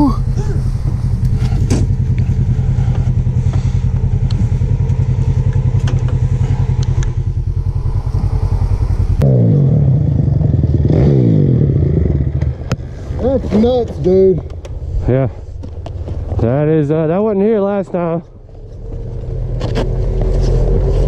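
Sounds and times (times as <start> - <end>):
utv engine throbbing at low revs: 0.0 - 13.4
dirt bike engine revving: 0.0 - 13.5.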